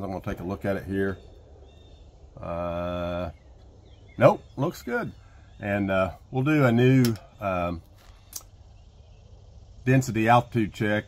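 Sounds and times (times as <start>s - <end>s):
faint steady background noise: 0.0s - 11.0s.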